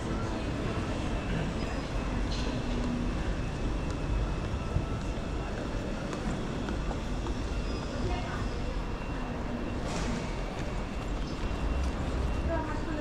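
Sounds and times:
low rumble of terminal: 0:00.0 - 0:13.0.

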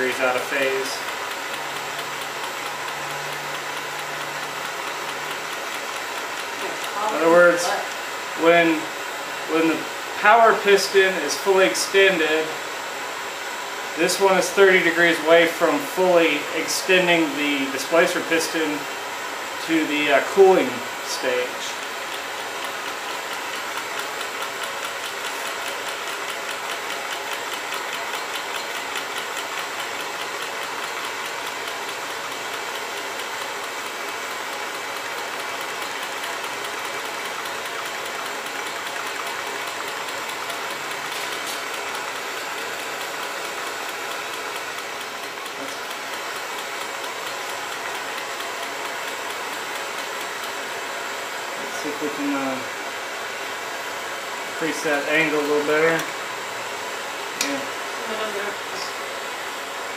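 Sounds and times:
small engine pistons knocking: 0:00.0 - 0:07.3, 0:19.6 - 0:51.9.

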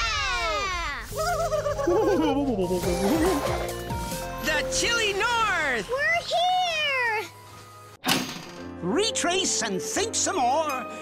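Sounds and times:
music: 0:01.0 - 0:11.0.

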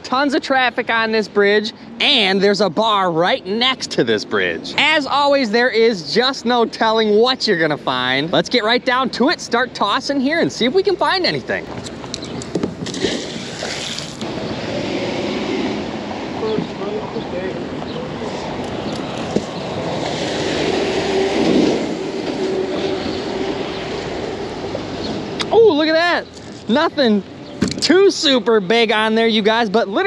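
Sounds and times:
water spraying off rope: 0:12.8 - 0:14.3
rushing river noise: 0:12.8 - 0:16.9, 0:17.6 - 0:25.4.

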